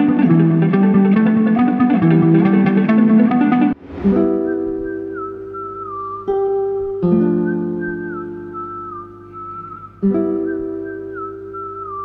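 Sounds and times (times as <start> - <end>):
acoustic guitar chords: 0.0 - 12.0
high thin sliding lead melody: 3.5 - 7.0.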